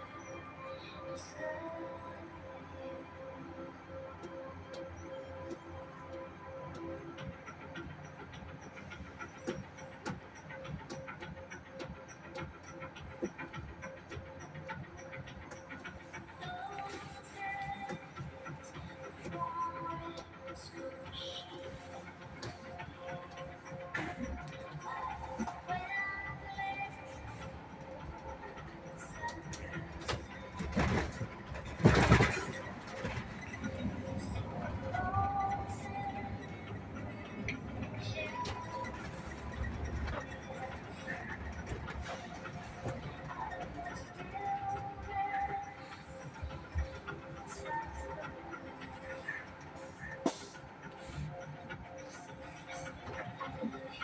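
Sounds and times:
bus rumble: 0.0 - 54.0
quiet music: 0.0 - 54.0
indistinct voices: 16.3 - 54.0.

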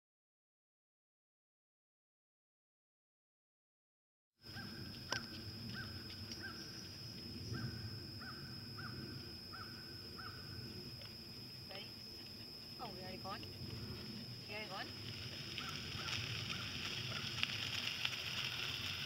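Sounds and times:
faint outdoor background: 4.4 - 19.0
bird calling: 4.5 - 10.6, 15.5 - 17.4
woman speaking: 11.7 - 12.0, 12.8 - 13.5, 14.4 - 15.0.

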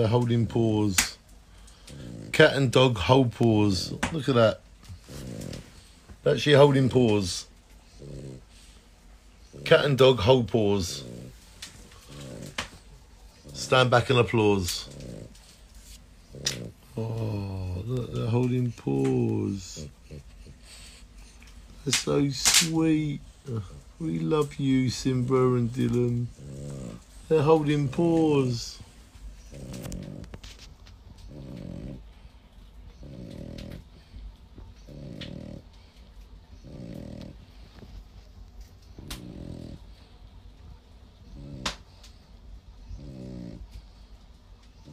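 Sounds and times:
dog breathing: 0.0 - 44.9.

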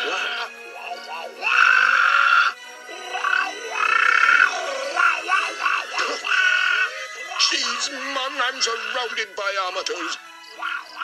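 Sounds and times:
soft background music: 0.0 - 11.0
cartoon voice screeching squawk-song: 3.2 - 7.9.

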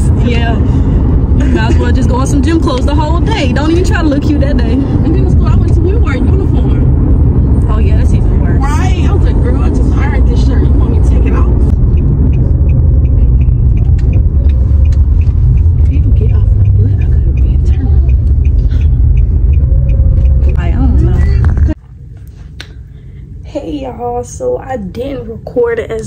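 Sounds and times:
car road rumble: 0.0 - 26.0.

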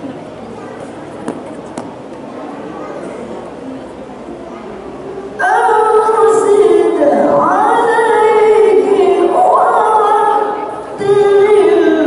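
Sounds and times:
woman reciting melodically: 5.4 - 12.0.

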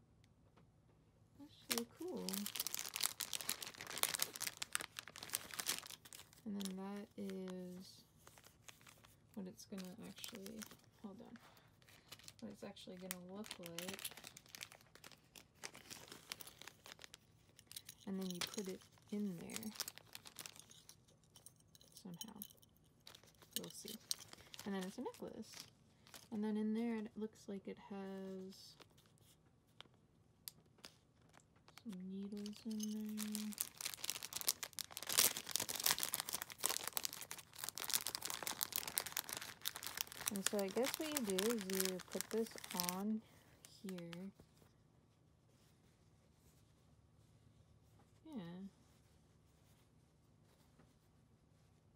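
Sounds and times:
plastic packaging crinkling: 1.5 - 26.4, 30.7 - 44.4.

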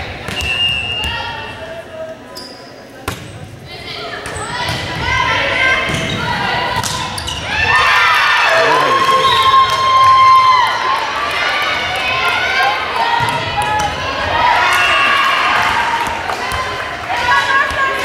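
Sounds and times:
crowd shouting and cheering: 7.4 - 18.0
players calling out: 8.4 - 10.7.

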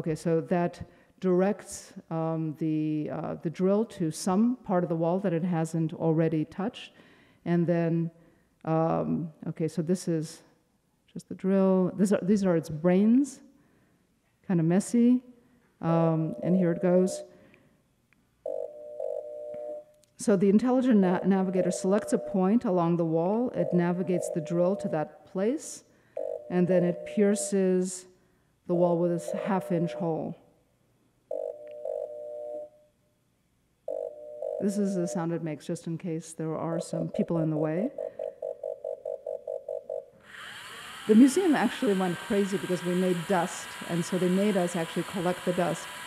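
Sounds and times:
machine warning beeper: 16.2 - 17.3, 21.4 - 22.7, 23.5 - 25.2, 26.3 - 27.6, 29.2 - 30.3
robotic drill pitched tone: 40.2 - 46.0.

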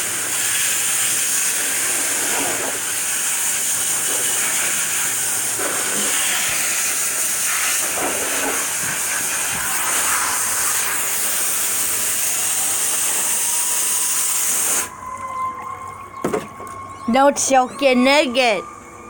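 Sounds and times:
hose nozzle spraying water: 0.0 - 14.9.

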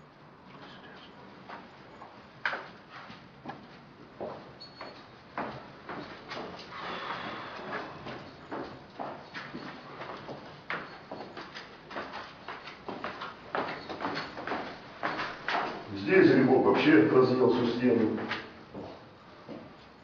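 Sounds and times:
footsteps walking: 1.4 - 15.9, 17.6 - 20.0.

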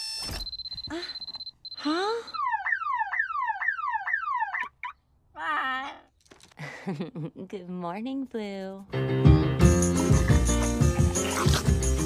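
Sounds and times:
electronic alarm beeping: 0.0 - 4.7
siren-like alarm wail: 1.8 - 4.8.

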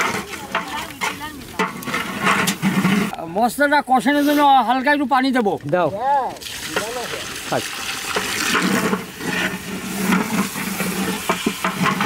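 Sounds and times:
spatula scraping metal pot: 0.0 - 3.2, 7.7 - 12.0
meat sizzling in oil: 6.4 - 12.0.

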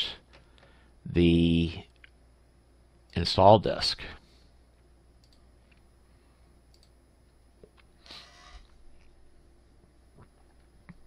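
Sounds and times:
computer mouse clicks: 5.2 - 5.8, 6.7 - 7.0.

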